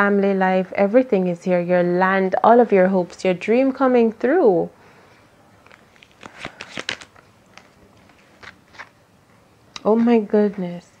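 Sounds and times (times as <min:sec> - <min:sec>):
cards shuffling: 0:05.6 - 0:09.0.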